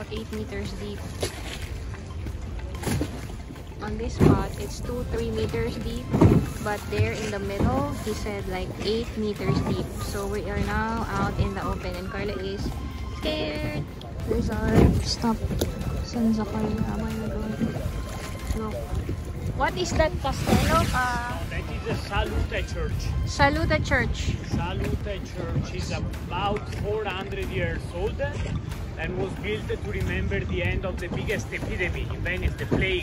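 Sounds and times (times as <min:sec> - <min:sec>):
voices: 0:00.0 - 0:01.7, 0:02.4 - 0:33.0
low rumble of water and wind: 0:00.0 - 0:33.0.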